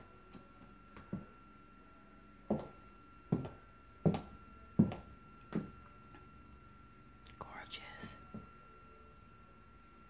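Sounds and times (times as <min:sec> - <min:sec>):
footsteps on hard floor: 0:01.0 - 0:01.3, 0:02.5 - 0:05.8.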